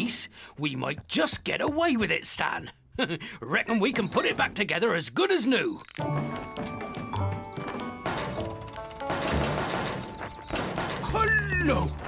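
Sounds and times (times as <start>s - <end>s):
cartoon background music: 5.7s - 12.0s
knocking on wooden door: 6.2s - 11.2s.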